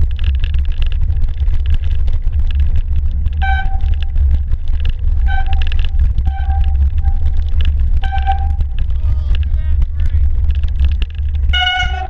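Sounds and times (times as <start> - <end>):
wind and riding vibration rumble: 0.0 - 12.0.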